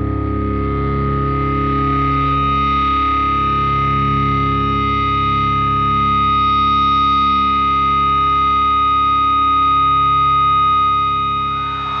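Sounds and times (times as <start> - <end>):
distorted electric guitar chord: 0.0 - 12.0.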